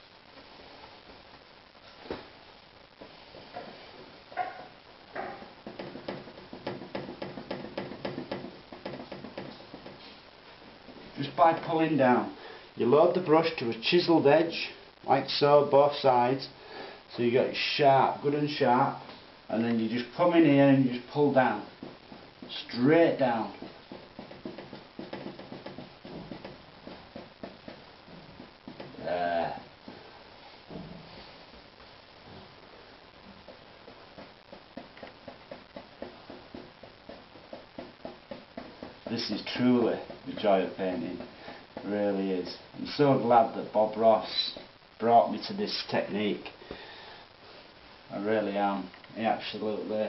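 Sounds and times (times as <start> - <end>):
paintbrush tapping: 5.2 - 10.2, 21.2 - 29.0, 33.2 - 41.9.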